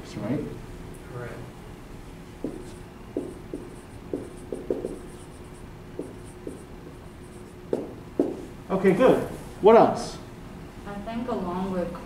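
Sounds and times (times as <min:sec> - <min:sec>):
marker squeaking on a whiteboard: 0:02.4 - 0:08.4.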